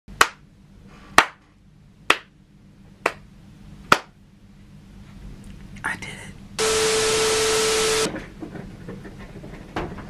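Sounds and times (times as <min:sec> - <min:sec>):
person clapping hands: 0:00.2 - 0:00.4, 0:01.2 - 0:01.4, 0:02.1 - 0:02.3.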